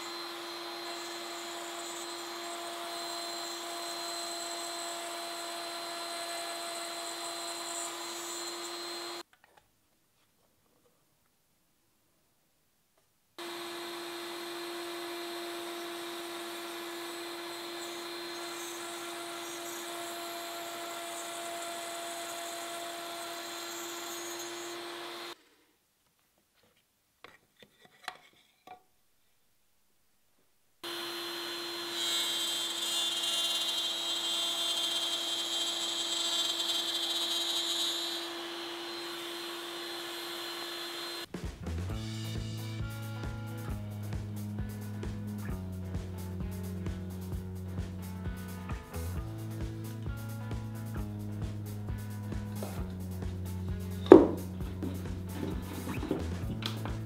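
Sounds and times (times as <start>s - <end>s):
router cutting wood: 0.0s - 9.2s, 13.4s - 25.4s, 30.8s - 41.3s, 54.0s - 57.0s
music: 41.3s - 57.0s.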